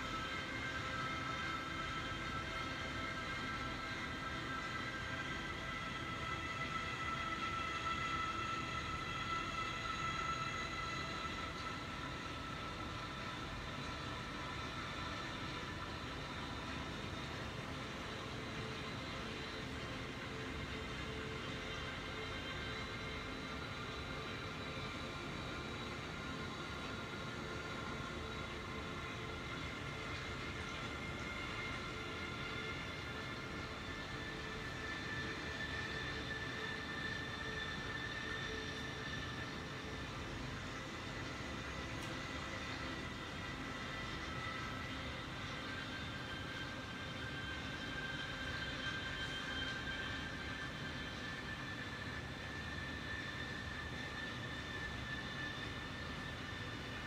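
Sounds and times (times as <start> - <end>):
mechanical drone with whining tones: 0.0 - 57.0.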